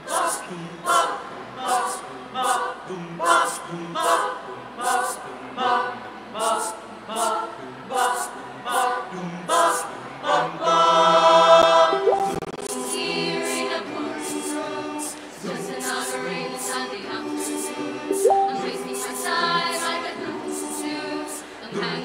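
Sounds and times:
choir singing a cappella: 0.0s - 22.0s.

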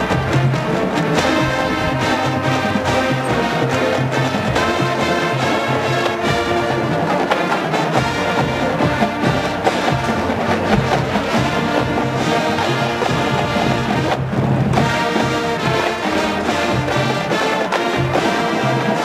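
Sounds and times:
marching band playing: 0.0s - 19.0s.

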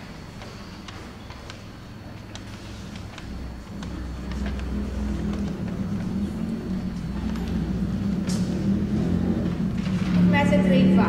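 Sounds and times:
low background rumble and hum: 0.0s - 11.0s.

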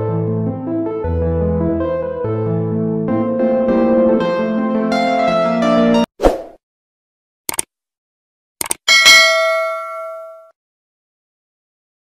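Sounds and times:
bright bell ding: 8.9s - 10.5s.

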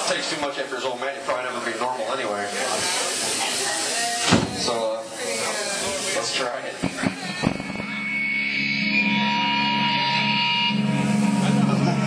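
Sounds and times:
thrash metal band playing: 6.7s - 12.0s
electric guitar sustained chord: 7.3s - 12.0s.

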